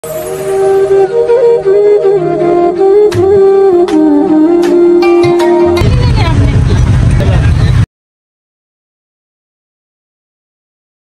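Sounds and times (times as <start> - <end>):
people talking: 5.4 - 7.9
loud steady low rumble: 5.8 - 7.9.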